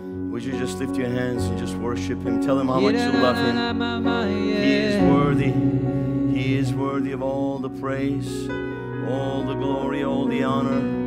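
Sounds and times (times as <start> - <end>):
person singing: 2.5 - 11.0.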